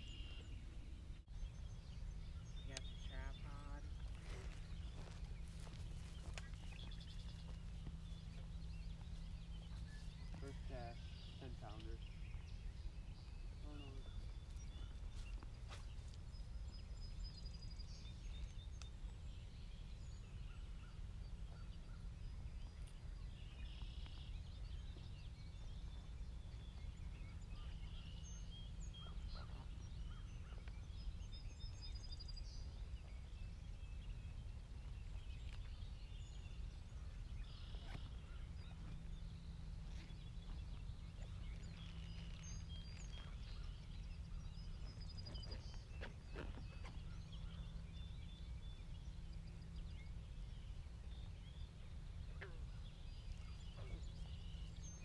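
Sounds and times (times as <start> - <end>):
bird calls: 0.0 - 55.0
steady low rumble: 0.0 - 55.0.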